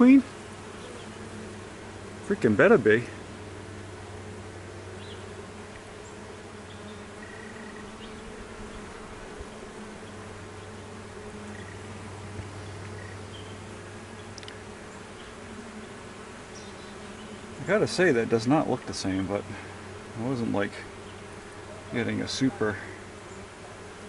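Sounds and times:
honey bees buzzing: 0.0 - 24.0.

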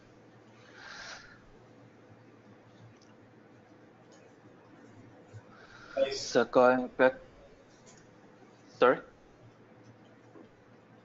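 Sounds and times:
soft breathy noise: 5.4 - 6.2.

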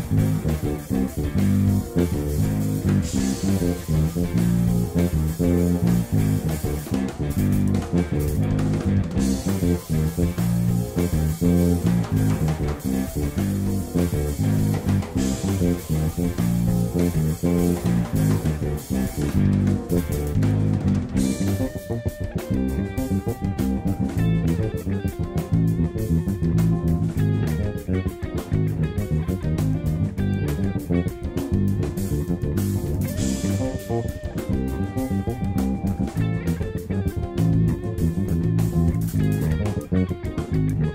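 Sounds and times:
bass guitar fingerstyle lines: 0.0 - 40.9
drum kit backing track: 0.0 - 40.9.

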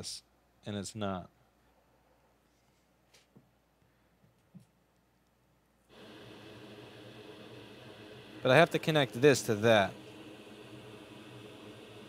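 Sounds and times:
small fan whirring: 5.9 - 12.0.

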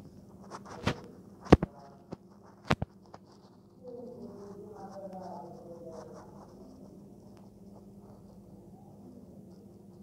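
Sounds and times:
steady low hum: 0.0 - 10.0
scratchy rustling handling noise: 0.2 - 8.5
faint voice: 3.8 - 7.2, 8.4 - 10.0.

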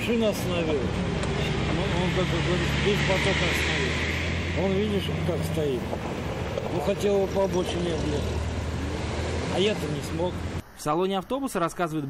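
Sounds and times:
man talking: 0.0 - 4.0, 4.6 - 5.9, 6.6 - 8.4, 9.4 - 12.0
road traffic rumble: 0.0 - 10.6.

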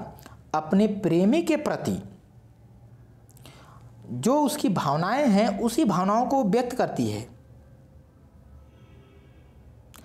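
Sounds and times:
person speaking: 0.0 - 2.3, 3.9 - 7.4
soft intake of breath: 3.4 - 4.0.

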